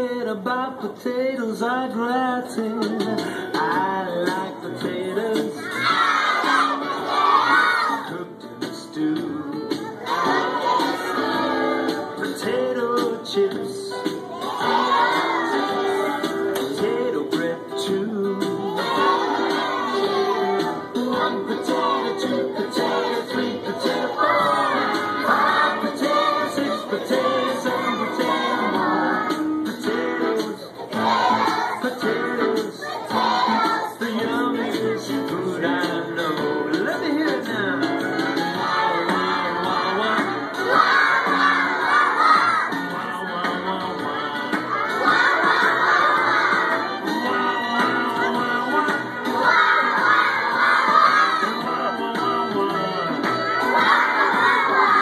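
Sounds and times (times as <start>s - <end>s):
children singing in unison: 5.3s - 8.2s, 9.6s - 13.5s, 14.3s - 35.0s, 38.2s - 55.0s.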